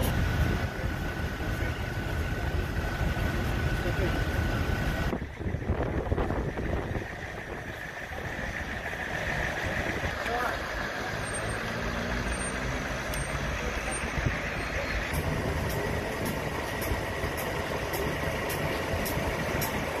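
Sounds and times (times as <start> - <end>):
indistinct voices: 0.0 - 20.0
vehicle engines idling: 0.0 - 20.0.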